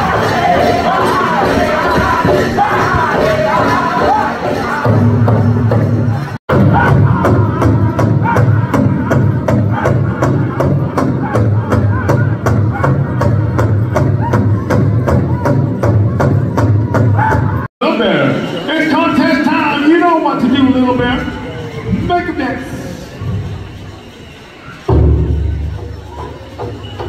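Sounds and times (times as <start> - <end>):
group singing: 0.0 - 5.5, 6.5 - 13.2
big drum beating fast: 0.0 - 17.7, 24.9 - 27.0.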